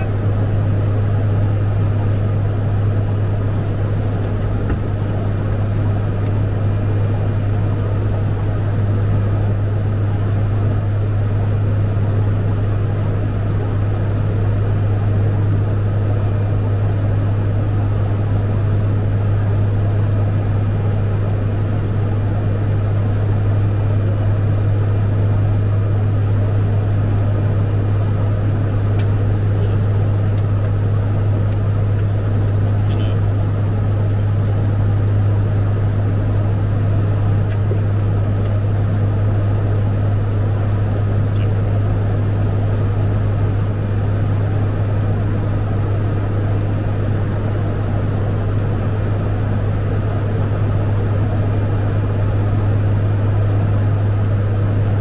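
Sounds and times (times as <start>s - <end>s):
constant rushing background: 0.0s - 55.0s
turboprop engines droning: 0.0s - 55.0s.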